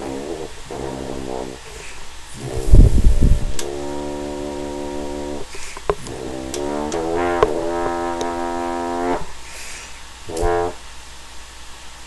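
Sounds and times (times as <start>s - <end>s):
rough low horn blast: 0.0s - 9.4s, 10.3s - 10.8s
french horn held note: 10.3s - 10.8s.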